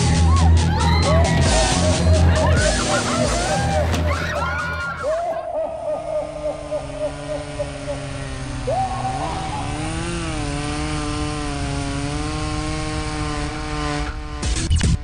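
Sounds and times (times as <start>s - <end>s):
buzzing machine-like drone: 6.1s - 15.0s.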